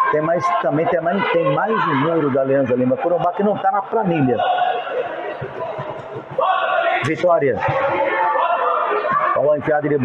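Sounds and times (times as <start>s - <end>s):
murmur of spectators: 0.0s - 10.0s.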